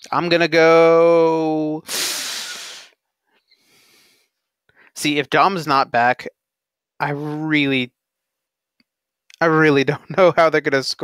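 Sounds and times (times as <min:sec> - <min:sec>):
man exhaling breathily: 0:01.9 - 0:03.0
faint breath: 0:01.9 - 0:05.0.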